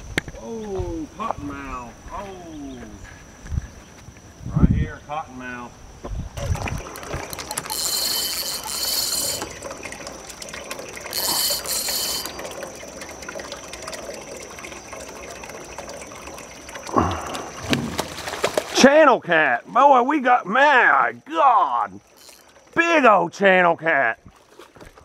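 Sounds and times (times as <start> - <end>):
fishing reel reeling: 7.0 - 12.8, 22.0 - 22.6
fishing reel drag buzzing: 7.0 - 12.9, 22.0 - 22.6.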